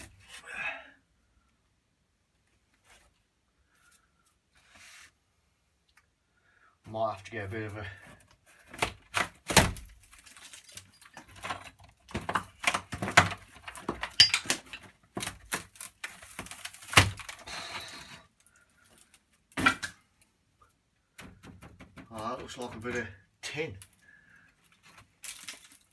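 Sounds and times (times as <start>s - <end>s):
wall boards cracking and scraping: 7.4s - 20.2s, 21.0s - 25.9s.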